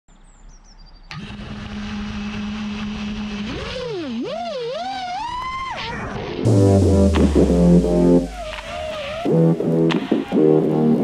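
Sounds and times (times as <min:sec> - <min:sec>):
quadcopter motors humming: 0:01.1 - 0:09.9
faint high stepped tones: 0:06.5 - 0:08.9.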